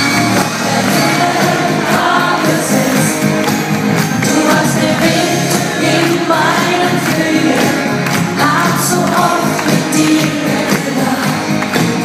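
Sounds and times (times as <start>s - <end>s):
live band playing with singing: 0.0s - 12.0s.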